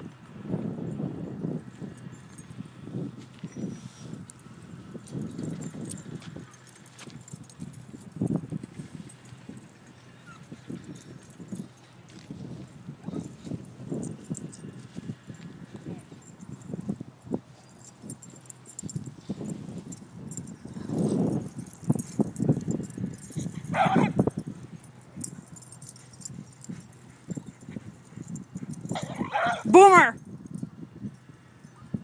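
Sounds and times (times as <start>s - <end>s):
short high dog bark: 23.7s - 24.2s, 29.0s - 30.1s.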